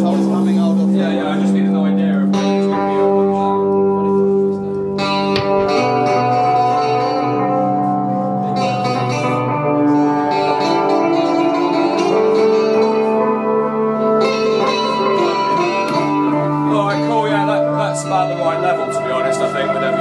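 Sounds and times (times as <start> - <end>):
droning electric guitar: 0.0 - 20.0
sustained instrument tones: 0.0 - 20.0.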